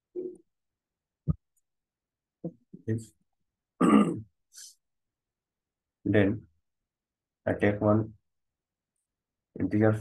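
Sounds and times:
man clearing his throat: 3.8 - 4.3.

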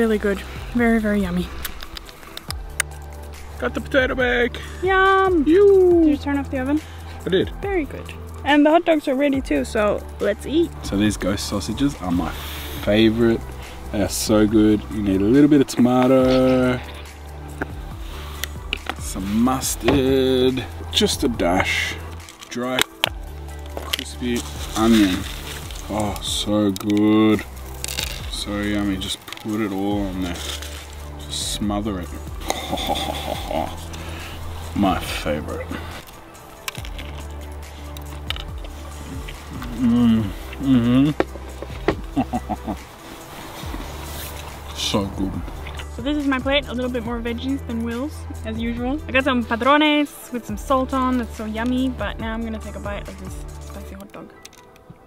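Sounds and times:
quiet background music: 0.0 - 55.0.

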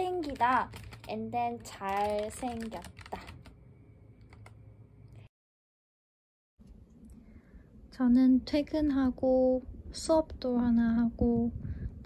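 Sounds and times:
typing on computer keyboard: 0.0 - 3.6, 4.2 - 4.6.

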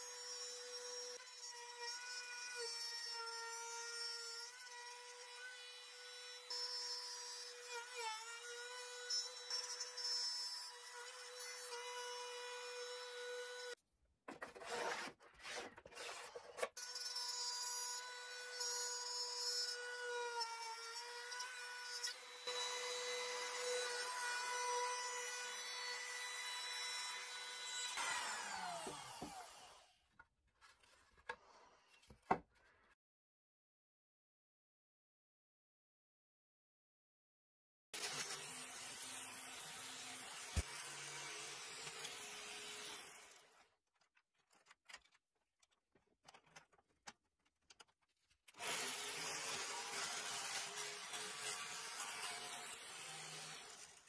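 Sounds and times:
router whining in wood: 15.5 - 30.0.

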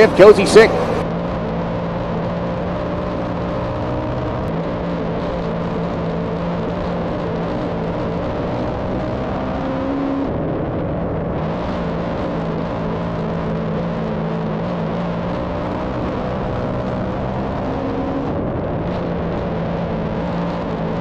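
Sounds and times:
race car engine droning: 0.0 - 21.0.

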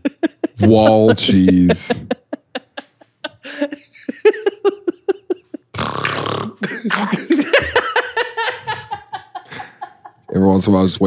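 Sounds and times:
men laughing hard: 0.0 - 5.8, 6.6 - 10.4.

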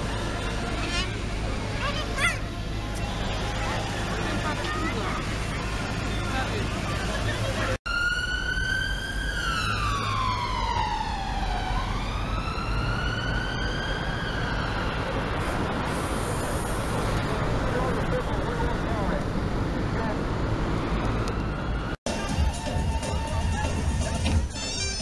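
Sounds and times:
crowd noise: 0.0 - 7.8, 22.1 - 25.0
street traffic: 0.0 - 25.0
siren wailing: 7.9 - 15.3.

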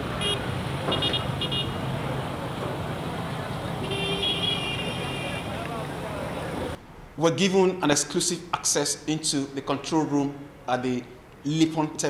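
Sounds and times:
vehicle horns honking: 0.0 - 2.0, 3.4 - 6.8
road traffic: 0.0 - 12.0.

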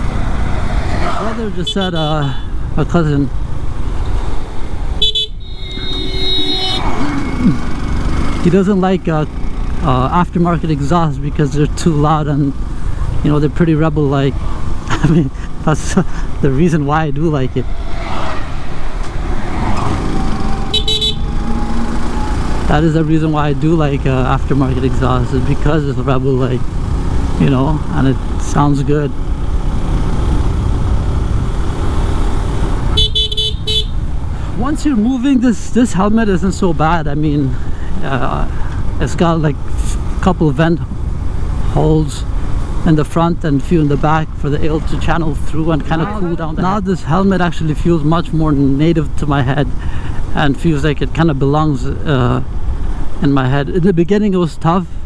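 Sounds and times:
motorcycle engine cruising: 0.0 - 47.3
road rumble: 0.0 - 55.0
wind: 0.0 - 55.0
vehicle horn: 1.6 - 2.6, 5.0 - 7.2, 20.4 - 22.6, 32.9 - 34.0.

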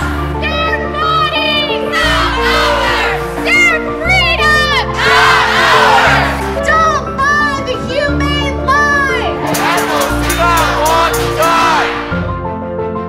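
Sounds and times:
crowd shouting and chanting: 0.0 - 7.7, 8.9 - 12.3.

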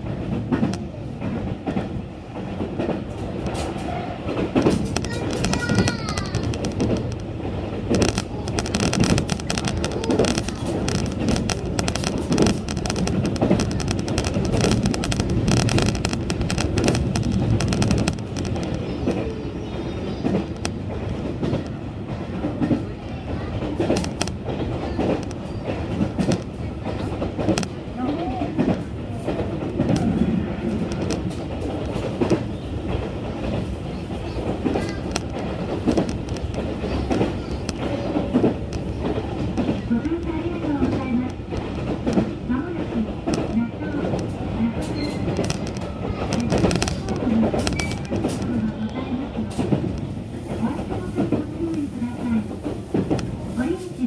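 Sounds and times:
rail clicks and clatter: 0.0 - 54.0
train rumbling at speed: 0.0 - 54.0.

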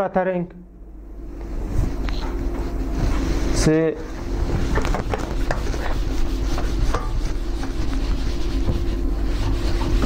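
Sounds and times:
low machine hum: 0.0 - 10.0
whiteboard eraser rubbing: 1.8 - 10.0.

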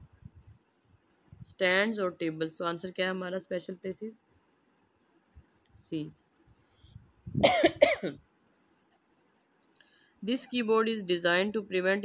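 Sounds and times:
person coughing: 7.4 - 8.2.

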